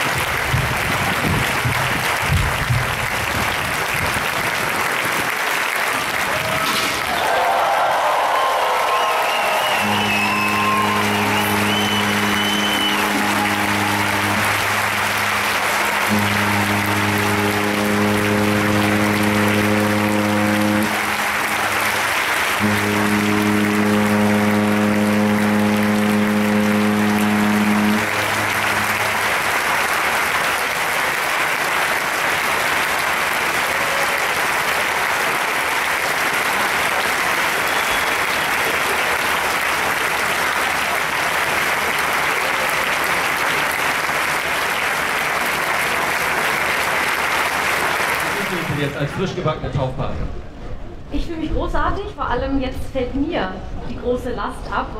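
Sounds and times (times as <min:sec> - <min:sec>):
crowd applause: 0:00.0 - 0:49.5
ship horn blasts: 0:07.3 - 0:48.8.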